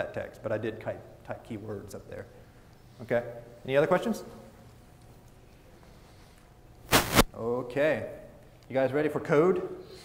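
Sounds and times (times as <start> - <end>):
brief loud rush of noise: 6.9 - 7.3.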